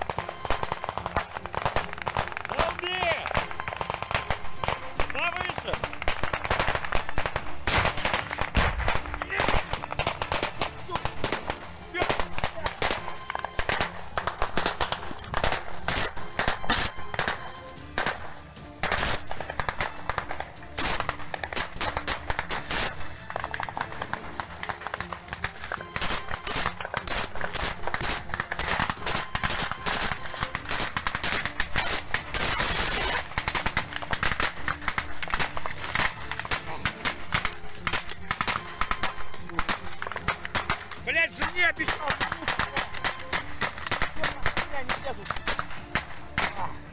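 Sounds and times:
rifle gunshots: 0.0 - 46.8
small-arms gunfire: 0.0 - 46.9.

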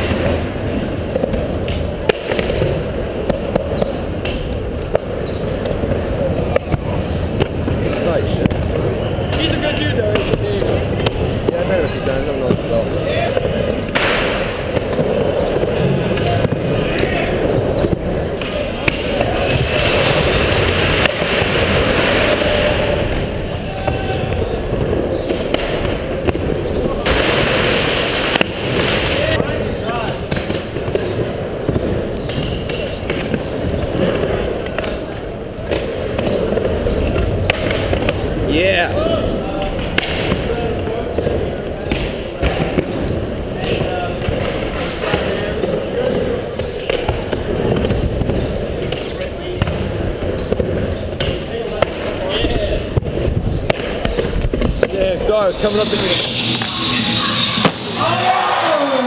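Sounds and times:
skateboards rolling on ramp: 0.0 - 56.8
indistinct voices: 0.0 - 59.0
skateboard knocks and clacks: 28.3 - 38.6.

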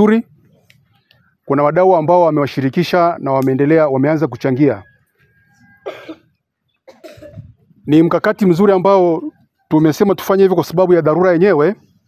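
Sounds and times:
man speaking: 0.0 - 0.3, 1.4 - 4.9, 7.8 - 11.9
person coughing: 5.8 - 6.3, 6.9 - 7.6.

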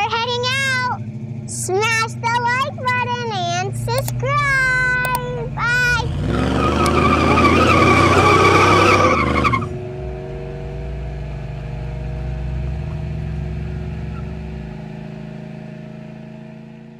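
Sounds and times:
go-kart engines whining: 0.0 - 15.6
drone of low held tones: 3.7 - 16.9.

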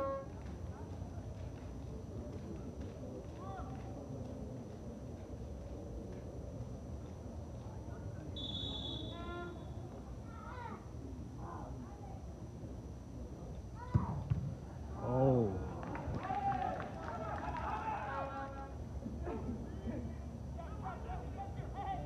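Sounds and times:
referee's whistle blast: 8.4 - 9.5.

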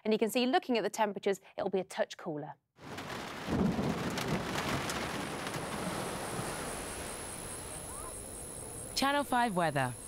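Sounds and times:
steady rain: 2.8 - 8.9
low thunder rumble: 2.9 - 8.9.

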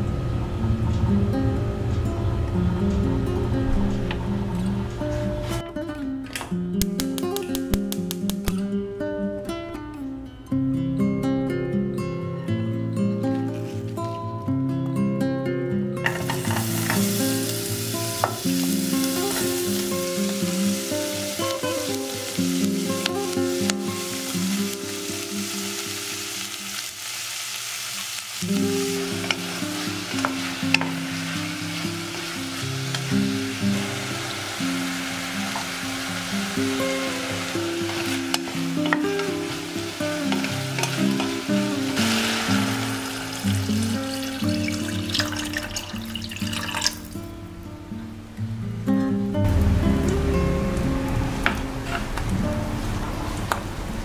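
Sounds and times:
acoustic guitar music: 0.0 - 54.0
onions and meat sizzling in oil: 16.0 - 47.1.

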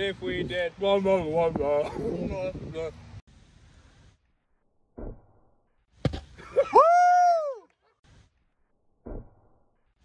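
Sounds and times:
person yelling: 6.6 - 7.7.

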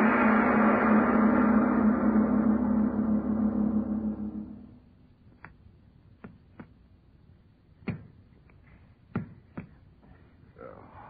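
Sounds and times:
gong ringing with pulsing hum: 0.0 - 4.8.

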